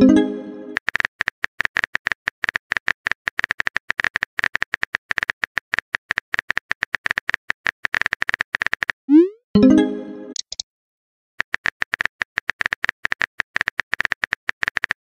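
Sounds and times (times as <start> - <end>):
smartphone keyboard clicks: 10.4 - 10.6.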